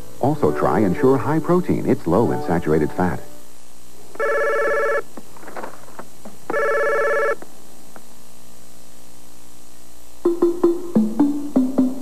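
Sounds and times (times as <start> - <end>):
telephone ringing: 4.2 - 5.1, 6.5 - 7.4.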